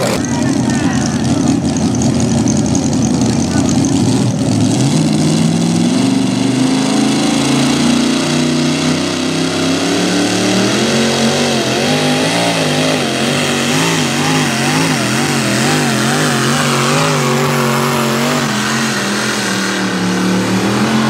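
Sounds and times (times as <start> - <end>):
tractor engine revving hard: 0.0 - 21.0.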